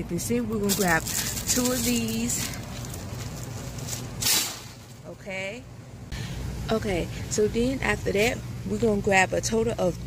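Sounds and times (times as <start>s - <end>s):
low steady hum: 0.0s - 10.0s
short rustling: 0.6s - 5.0s.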